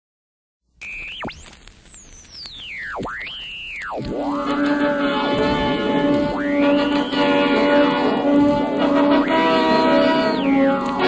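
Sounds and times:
pure tone swooping in pitch: 2.4 - 11.0.

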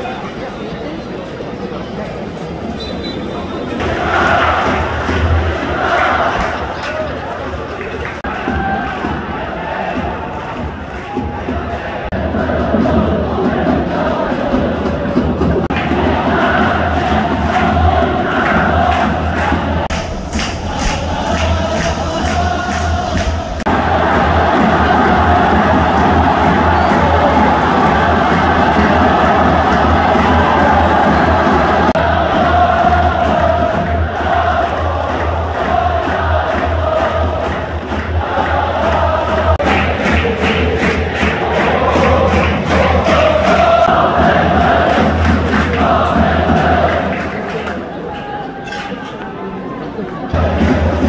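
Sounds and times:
crowd chanting in unison: 2.4 - 51.0
steady low drumbeat: 3.8 - 6.7, 8.2 - 47.3, 50.4 - 51.0.

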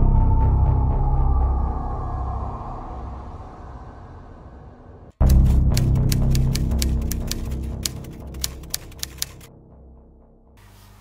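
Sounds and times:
typewriter keys clacking: 5.2 - 9.5.

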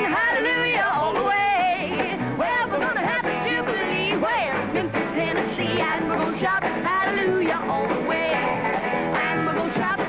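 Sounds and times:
man and woman singing together: 0.0 - 8.5, 9.2 - 10.0
electric guitars and backing band: 0.0 - 10.0.

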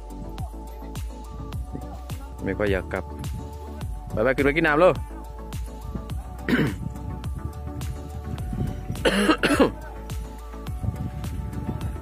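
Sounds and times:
background music: 0.0 - 12.0
loud coughs: 6.5 - 6.8, 9.0 - 9.8.

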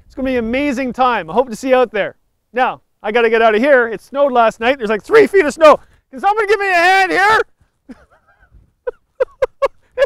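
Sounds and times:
man laughing: 7.8 - 10.0.

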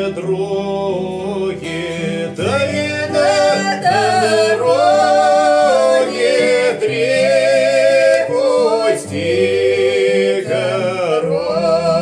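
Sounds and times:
acoustic guitar: 0.0 - 12.0
man and woman singing folk song: 0.0 - 12.0.

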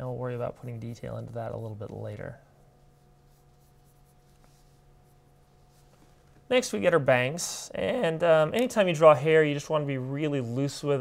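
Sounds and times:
low steady hum: 0.0 - 11.0
pencil scratching on paper: 2.9 - 5.2.

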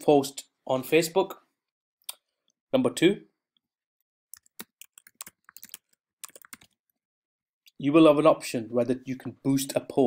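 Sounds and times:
typing on computer keyboard: 4.3 - 6.8.

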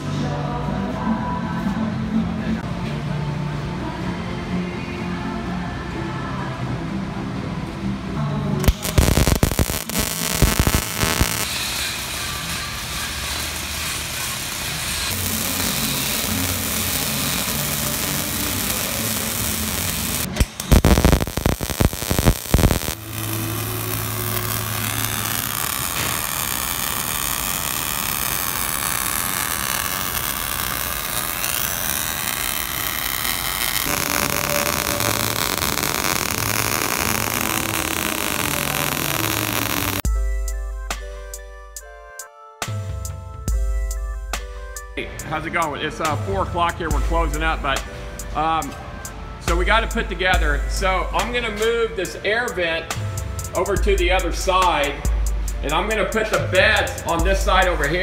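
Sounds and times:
background music: 0.0 - 58.0
arc welding hiss: 8.6 - 40.1.

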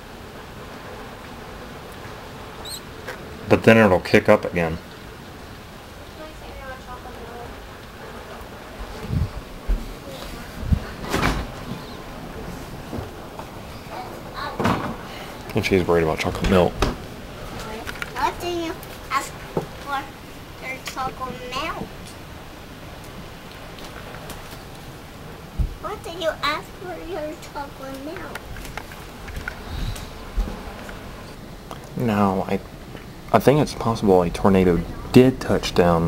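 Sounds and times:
low rumble of gusts: 0.0 - 36.0
rain: 0.0 - 36.0
wind rushing: 5.0 - 31.6.

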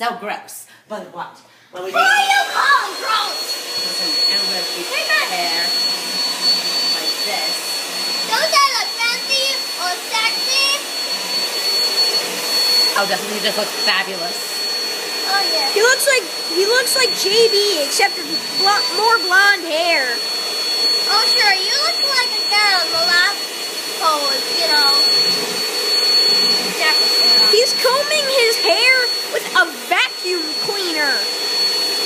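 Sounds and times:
vacuum cleaner running: 1.8 - 32.0.

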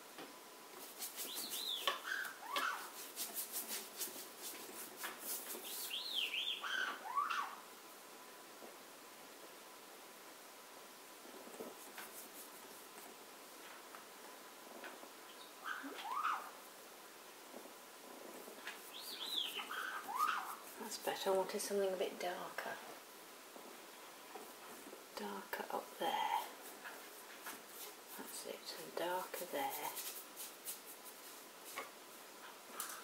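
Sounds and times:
parrot whistled calls: 5.9 - 7.6, 15.6 - 16.5, 19.1 - 20.5.

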